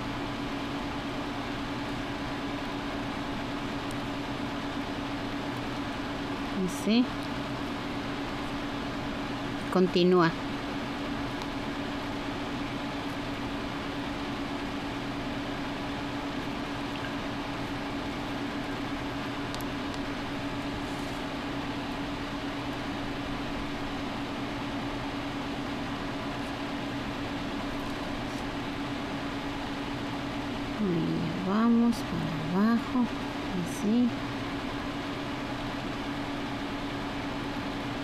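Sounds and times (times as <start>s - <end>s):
steady mechanical hum: 0.0s - 38.0s.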